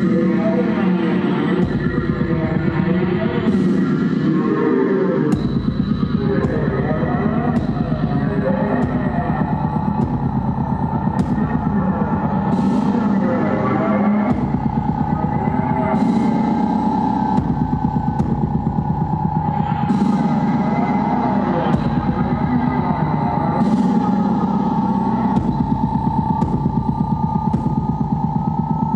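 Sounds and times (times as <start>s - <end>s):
loud dense electronic drone: 0.0s - 28.9s
steady high tone: 0.0s - 28.9s.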